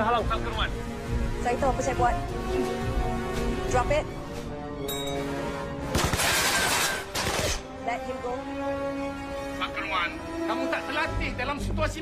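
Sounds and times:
film music: 0:00.0 - 0:12.0
loud shattering crash: 0:06.0 - 0:07.5.

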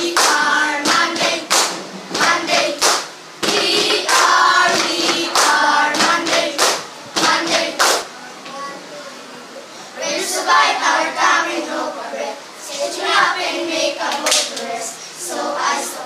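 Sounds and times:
children clapping hands: 0:00.0 - 0:08.1, 0:14.1 - 0:14.6
children singing together: 0:00.0 - 0:08.1, 0:09.9 - 0:16.0.

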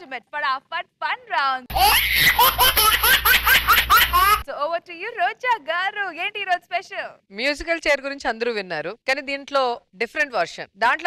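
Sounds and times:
woman's voice: 0:00.0 - 0:01.7, 0:04.4 - 0:11.0.

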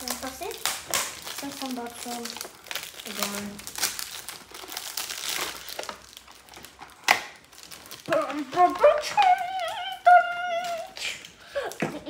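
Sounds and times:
gift wrapping crinkling: 0:00.0 - 0:12.0.

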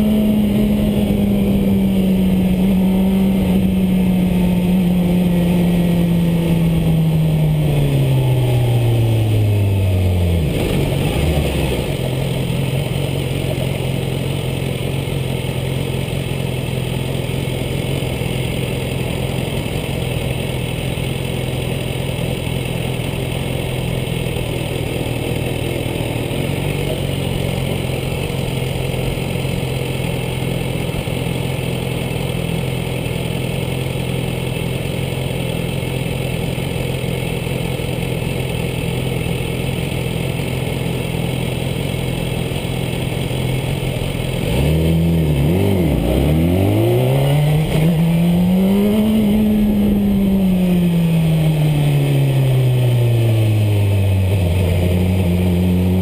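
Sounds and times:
motorcycle engine idling and revving: 0:00.0 - 0:56.0.

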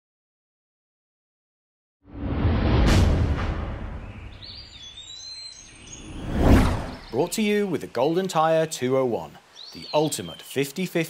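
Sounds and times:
high chirping whistling tones: 0:04.0 - 0:07.5.

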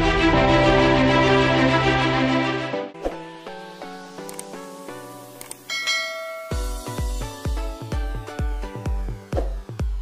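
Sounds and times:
quick clicks: 0:04.2 - 0:04.6
notification bell ding: 0:05.7 - 0:07.0.

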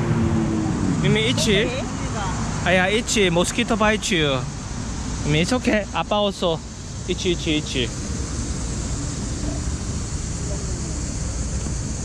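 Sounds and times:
faint distant voices: 0:08.8 - 0:12.0.

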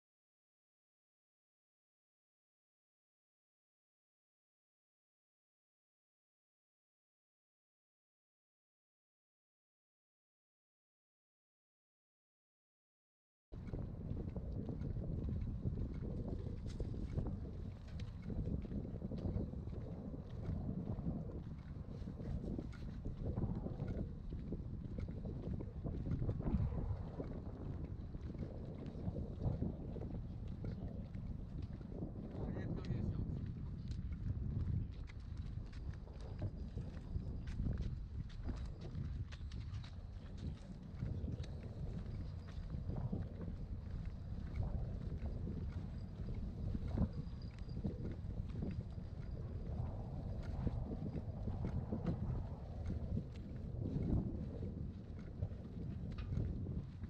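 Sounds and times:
wind buffeting microphone: 0:13.6 - 0:57.0.

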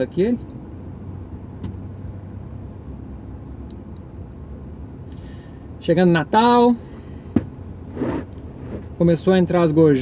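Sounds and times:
car engine idling: 0:00.0 - 0:10.0
cars passing outside: 0:00.0 - 0:10.0.

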